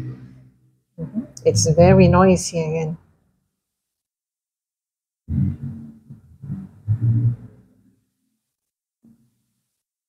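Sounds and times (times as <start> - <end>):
loud low rumbling: 1.0 - 2.4, 5.3 - 7.7
low droning hum: 1.4 - 2.4.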